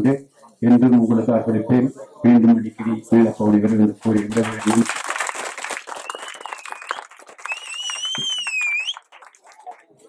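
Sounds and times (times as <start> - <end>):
crowd clapping: 4.0 - 10.0
shrill wavering whistle: 6.0 - 9.0.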